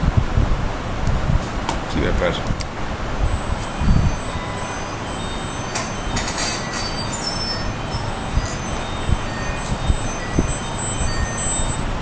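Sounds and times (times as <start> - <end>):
rumbling room noise: 0.0 - 12.0.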